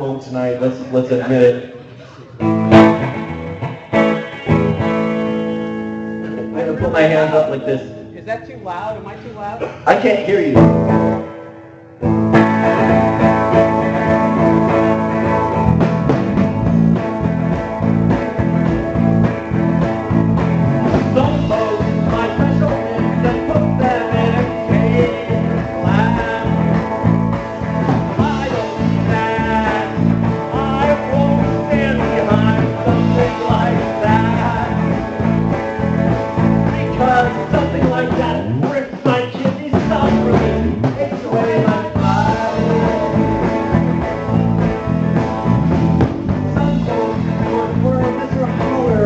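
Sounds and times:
country rock band playing: 0.0 - 49.0.

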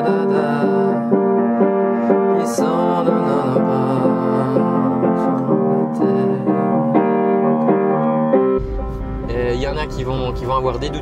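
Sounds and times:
slow piano chords: 0.0 - 11.0
car interior rumble: 8.6 - 11.0.

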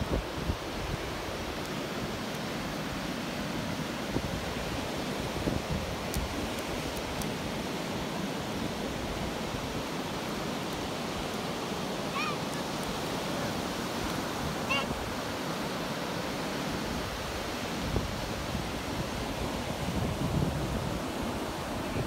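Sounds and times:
waves breaking on beach: 0.0 - 22.0.

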